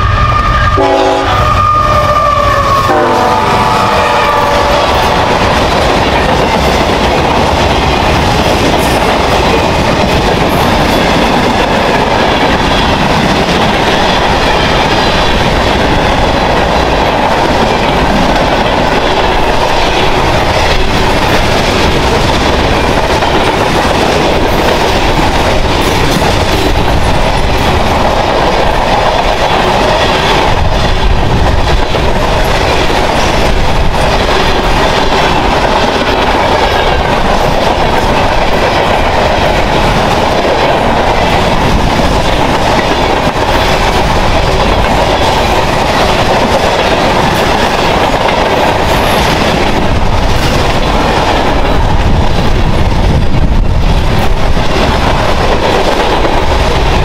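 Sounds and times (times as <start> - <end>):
freight train wheels rumbling: 0.0 - 57.0.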